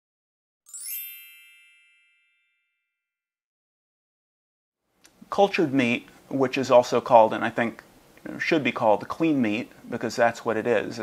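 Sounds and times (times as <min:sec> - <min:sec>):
bright chime: 0:00.7 - 0:03.1.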